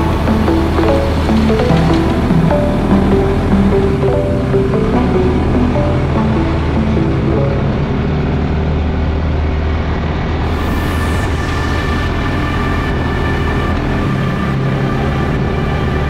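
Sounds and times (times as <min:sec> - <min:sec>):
music soundtrack: 0:00.0 - 0:09.0.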